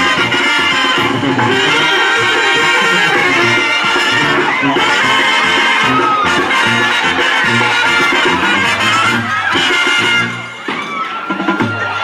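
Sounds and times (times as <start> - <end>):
steady bass beat: 0.0 - 10.6
band music with brass: 0.0 - 12.0.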